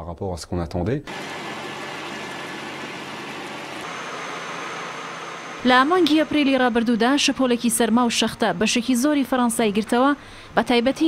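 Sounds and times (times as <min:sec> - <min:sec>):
motor running steadily: 0:01.1 - 0:11.0.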